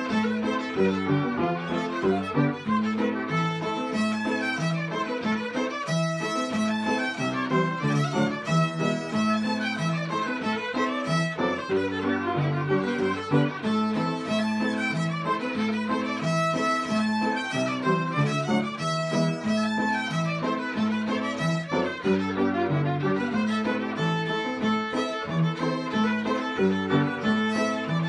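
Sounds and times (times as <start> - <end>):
fiddles playing a reel: 0.0 - 28.0
piano accompaniment: 0.0 - 28.0.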